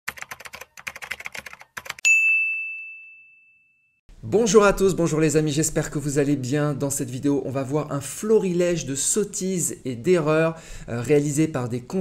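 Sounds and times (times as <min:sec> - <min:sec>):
rapid typing clicks: 0:00.1 - 0:02.0
bright bell ding: 0:02.0 - 0:04.0.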